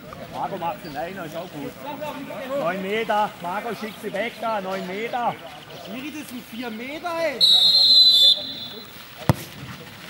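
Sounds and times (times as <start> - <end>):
referee's whistle blast: 7.4 - 8.9
football kick thud: 9.2 - 9.7.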